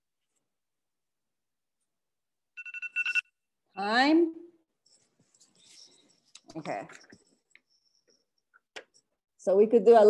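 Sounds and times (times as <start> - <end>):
timer alarm beeping: 2.6 - 3.3.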